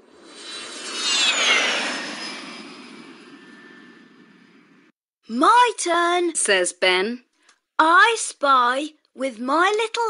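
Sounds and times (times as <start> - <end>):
cartoon jet plane flying past: 0.0 - 4.9
falling whistle: 0.3 - 4.9.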